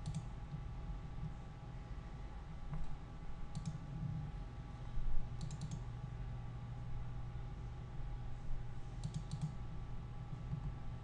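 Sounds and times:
computer mouse clicks: 0.0s - 0.6s, 2.7s - 3.8s, 5.4s - 5.9s, 9.0s - 9.6s
low steady hum: 0.0s - 11.0s.

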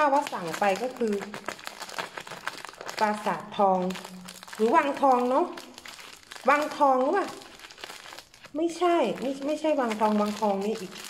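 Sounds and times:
plastic bag crinkling: 0.0s - 11.0s
scissors cutting plastic: 0.0s - 11.0s.

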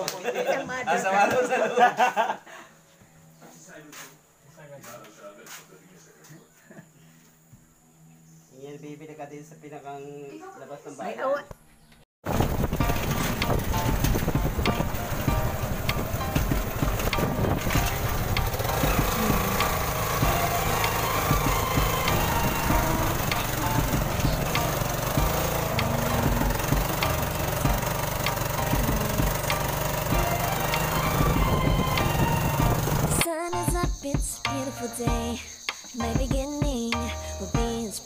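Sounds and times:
wind buffeting: 12.3s - 29.4s, 30.1s - 33.2s
sidecar frame rattling: 12.3s - 33.2s
small motorcycle engine running: 12.3s - 33.3s.

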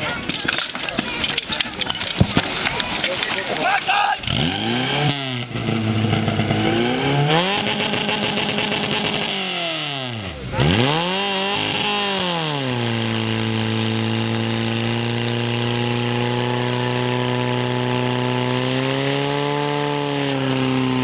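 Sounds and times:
pump engine running at high revs: 4.2s - 21.0s.

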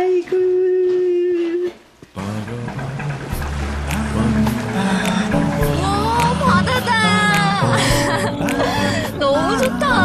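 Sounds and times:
background music: 2.2s - 10.0s.

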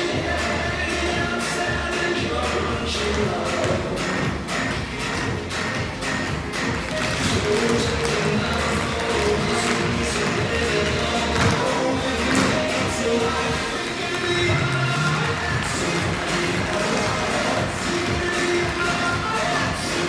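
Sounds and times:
recorded music: 0.0s - 20.0s
tap shoes clicking on hard floor: 4.8s - 11.7s.

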